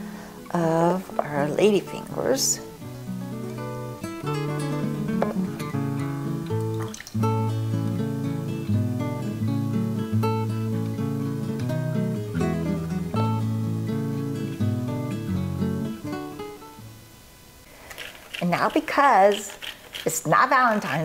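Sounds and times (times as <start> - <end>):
acoustic guitar music: 0.0 - 17.0.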